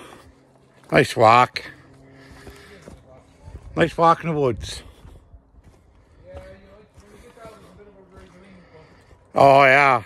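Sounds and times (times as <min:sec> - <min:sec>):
footsteps on woodland path: 0:00.0 - 0:10.0.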